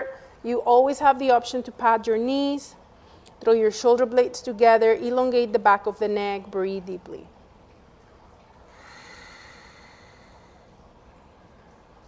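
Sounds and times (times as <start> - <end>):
slow deep breath: 8.7 - 10.8.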